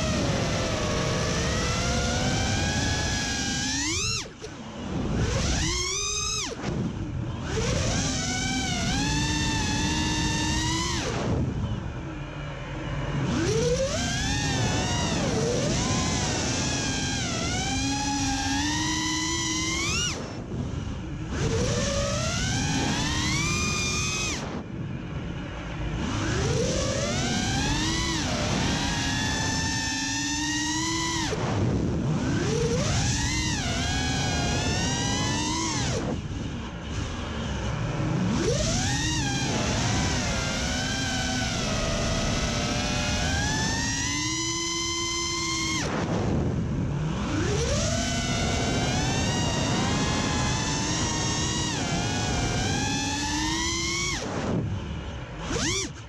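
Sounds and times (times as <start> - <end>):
quadcopter motors whining: 0.0 - 56.0.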